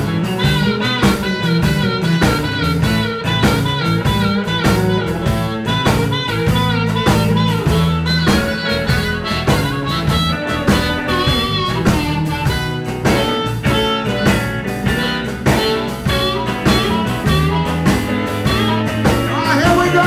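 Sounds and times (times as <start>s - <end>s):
amplified harmonica: 0.0s - 20.0s
drum kit steady beat: 0.0s - 20.0s
electric bass: 0.0s - 20.0s
electric guitar: 0.0s - 20.0s.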